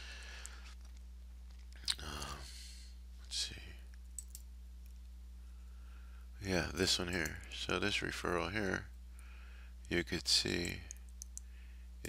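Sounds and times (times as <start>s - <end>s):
person breathing: 0.0s - 0.8s, 2.0s - 3.0s, 5.4s - 6.4s, 9.1s - 9.8s, 11.4s - 12.0s
low electrical hum: 0.0s - 12.0s
lip clicks: 1.6s - 2.4s
person murmuring hesitation: 1.9s - 2.6s.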